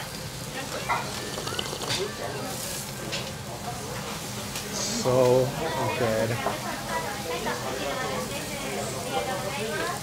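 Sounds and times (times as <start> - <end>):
faint restaurant chatter: 0.0 - 10.0
meat sizzling on hot stone: 0.0 - 10.0.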